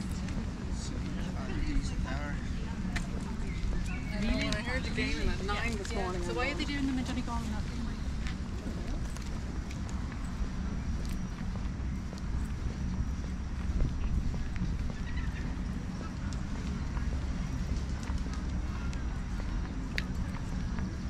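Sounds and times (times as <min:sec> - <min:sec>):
footsteps on paved path: 0:00.0 - 0:21.0
wind rumble on microphone: 0:00.0 - 0:21.0.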